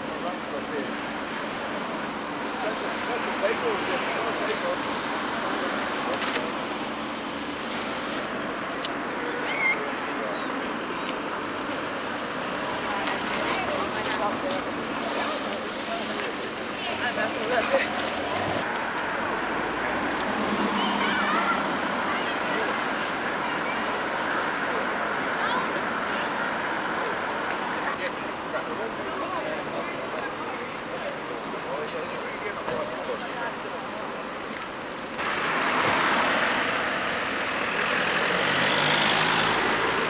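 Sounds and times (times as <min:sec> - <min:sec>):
cars driving past: 0:00.0 - 0:30.2, 0:34.8 - 0:40.0
distant voices: 0:00.0 - 0:40.0
traffic noise: 0:00.0 - 0:40.0
wind: 0:00.0 - 0:40.0.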